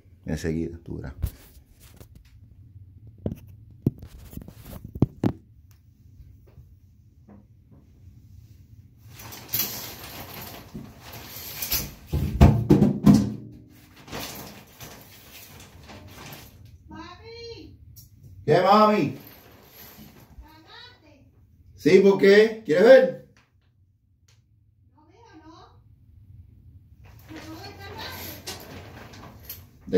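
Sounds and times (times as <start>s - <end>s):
fabric rustle: 9.1s - 12.1s, 18.8s - 20.9s, 27.0s - 29.9s
curtain rings scraping on metal rod: 9.2s - 12.0s, 27.2s - 29.9s.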